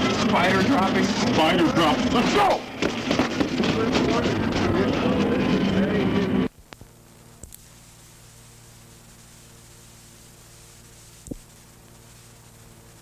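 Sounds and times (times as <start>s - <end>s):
faint hum and hiss: 6.5s - 13.0s.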